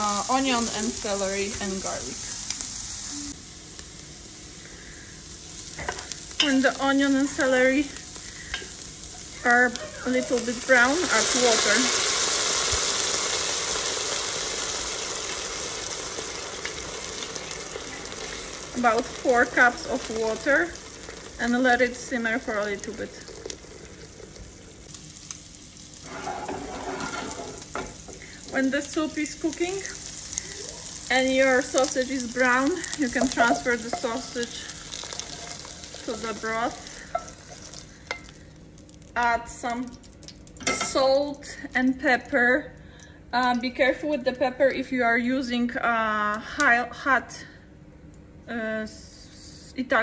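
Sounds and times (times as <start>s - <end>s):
sizzling in hot oil: 0.0s - 42.2s
water poured into hot pot: 10.8s - 21.4s, 22.5s - 25.2s, 29.7s - 38.4s
wooden spoon scraping a pan: 26.0s - 28.2s.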